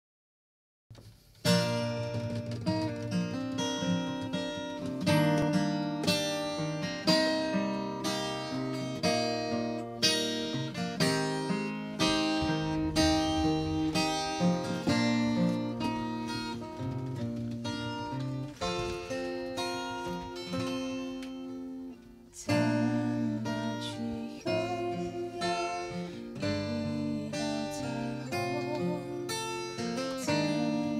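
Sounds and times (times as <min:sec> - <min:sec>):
acoustic guitar chords: 0:01.0 - 0:30.9.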